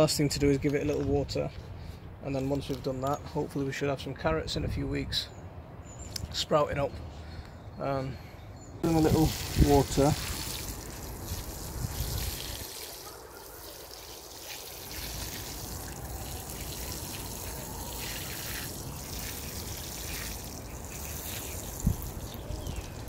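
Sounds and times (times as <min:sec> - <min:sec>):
watering can sprinkling water: 0:08.9 - 0:23.0.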